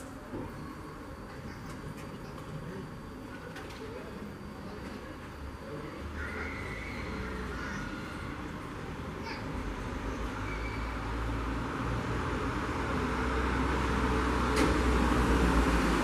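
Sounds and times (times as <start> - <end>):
faint calls: 6.1 - 8.5.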